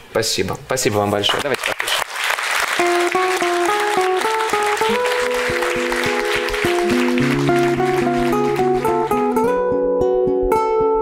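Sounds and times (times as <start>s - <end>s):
audience applause: 1.3s - 9.5s
classical guitar picked: 2.8s - 11.0s.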